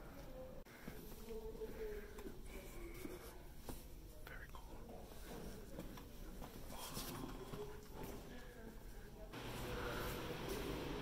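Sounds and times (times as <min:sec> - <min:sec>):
whispered voices: 0:00.0 - 0:11.0.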